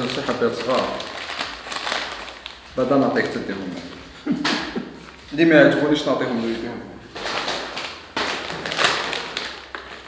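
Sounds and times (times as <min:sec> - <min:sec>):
plastic chip bag crinkling: 0:00.0 - 0:04.1, 0:07.1 - 0:10.0.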